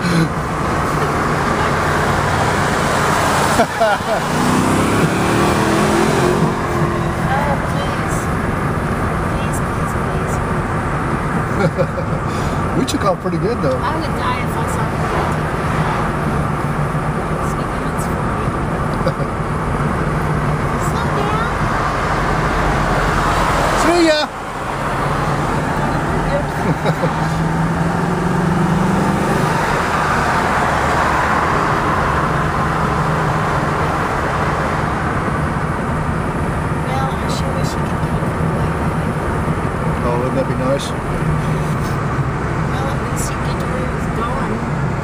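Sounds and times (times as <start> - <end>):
vehicle engine hum: 0.0 - 45.0.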